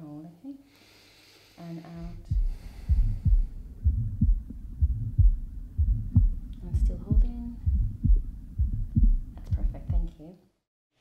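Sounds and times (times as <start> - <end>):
heart murmur: 2.0 - 10.1
heartbeat through stethoscope: 2.0 - 10.1.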